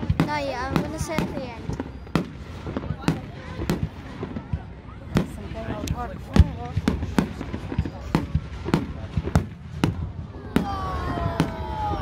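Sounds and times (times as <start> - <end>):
fireworks bangs: 0.0 - 12.0.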